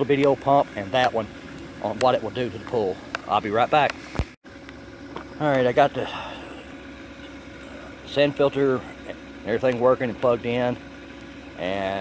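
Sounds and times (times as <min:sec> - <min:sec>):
filter pump humming: 0:00.0 - 0:12.0.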